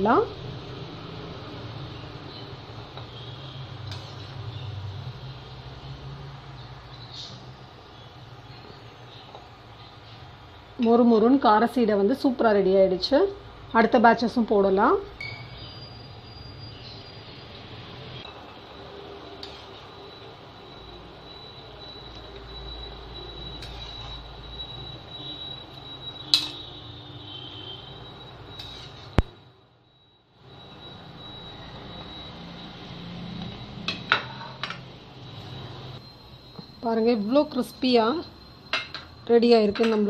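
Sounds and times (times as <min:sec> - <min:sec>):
thin high whine: 0:15.2 - 0:39.7.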